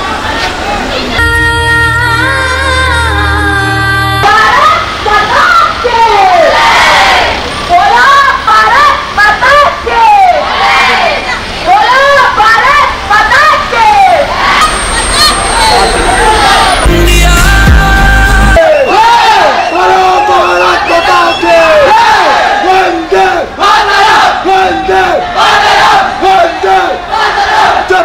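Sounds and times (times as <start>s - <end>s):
crowd shouting together: 4.3s - 17.7s, 18.4s - 28.0s
music with heavy bass: 16.8s - 18.7s.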